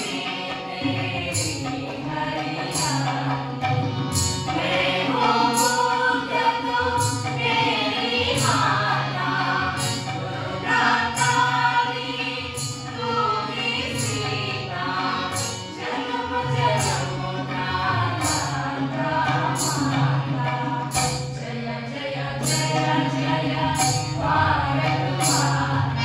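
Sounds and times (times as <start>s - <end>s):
group singing in chorus: 0.0s - 26.0s
harmonium: 0.0s - 26.0s
tabla: 0.0s - 26.0s.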